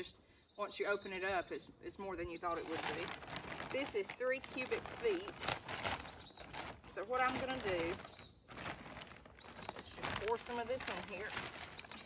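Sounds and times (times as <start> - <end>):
plastic bag crinkling: 2.5 - 12.0
small bird chirping: 5.9 - 12.0.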